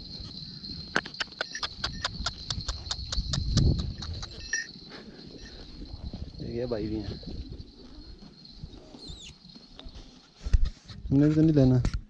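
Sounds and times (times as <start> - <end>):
fast sharp clicks: 1.0 - 4.7.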